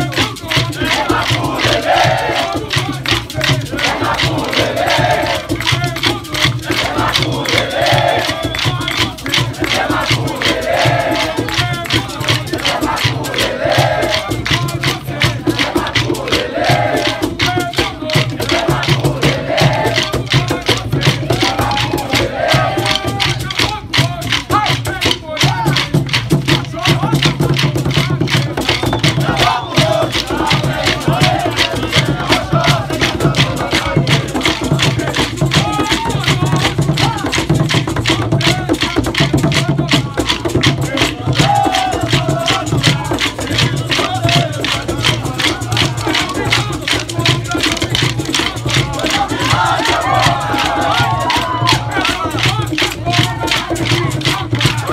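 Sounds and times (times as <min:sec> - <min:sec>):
drums beating: 0:00.0 - 0:54.9
group singing: 0:00.0 - 0:54.9
wooden sticks clacking: 0:39.6 - 0:54.9.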